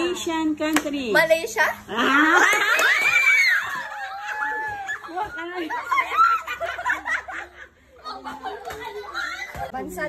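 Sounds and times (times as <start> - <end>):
girls chattering: 1.1 - 10.0
girls laughing: 1.9 - 9.9.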